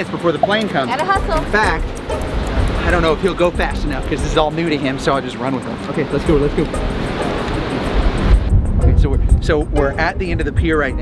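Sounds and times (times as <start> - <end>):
background music: 0.0 - 11.0
wind buffeting microphone: 1.0 - 5.4, 6.0 - 11.0.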